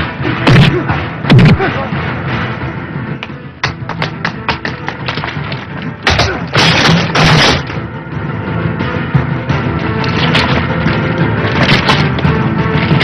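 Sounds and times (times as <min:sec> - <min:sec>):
film background music: 0:00.0 - 0:13.0.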